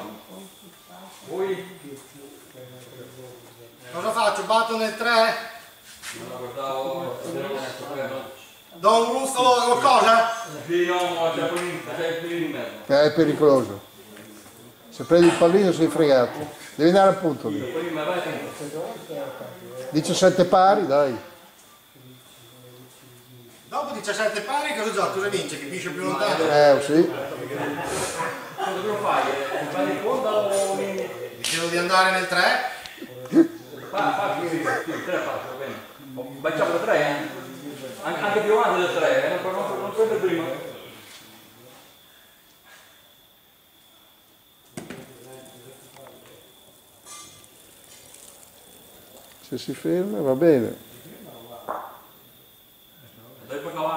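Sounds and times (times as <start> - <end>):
indistinct talking: 0.0 - 41.8
high insect chirr: 0.0 - 53.9
bocce ball knock: 51.6 - 52.1.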